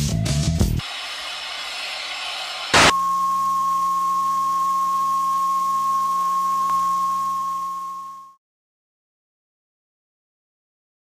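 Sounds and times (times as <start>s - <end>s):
high-pitched electronic beep tone: 2.8s - 8.4s.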